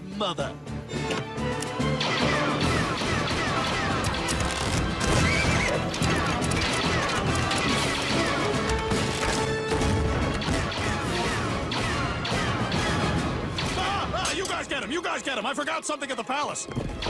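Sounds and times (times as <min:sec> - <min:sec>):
dramatic action music: 0:00.0 - 0:17.0.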